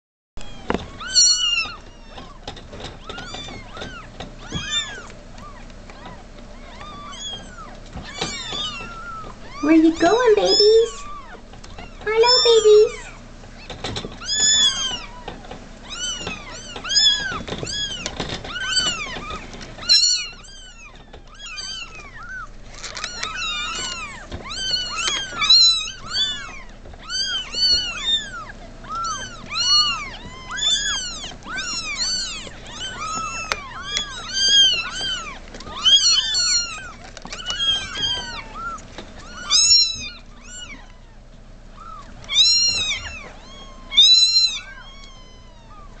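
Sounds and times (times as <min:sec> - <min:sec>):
kittens mewing: 0:00.4 - 0:46.0.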